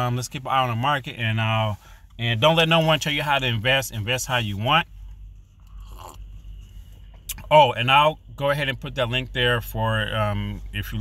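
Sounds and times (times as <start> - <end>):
low steady hum: 0.0 - 11.0
man sipping coffee: 5.6 - 6.5.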